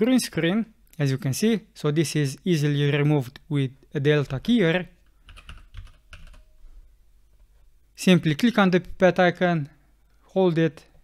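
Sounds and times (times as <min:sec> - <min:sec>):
computer keyboard typing: 0:05.2 - 0:06.4.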